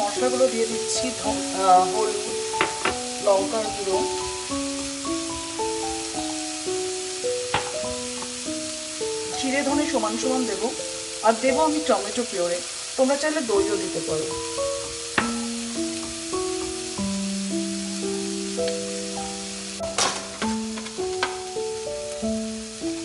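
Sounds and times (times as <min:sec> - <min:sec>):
slow melodic background music: 0:00.0 - 0:23.0
vegetables sizzling in oil: 0:00.0 - 0:23.0.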